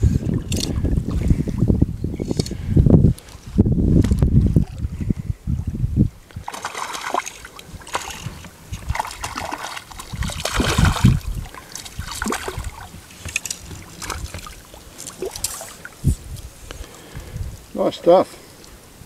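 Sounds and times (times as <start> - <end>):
water splashing and sloshing: 0.0 - 1.8, 3.2 - 17.7.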